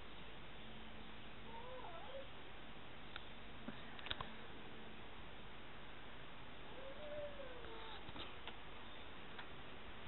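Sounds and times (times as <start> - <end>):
background hiss: 0.0 - 10.0
faint animal call: 1.4 - 2.4, 6.7 - 8.1.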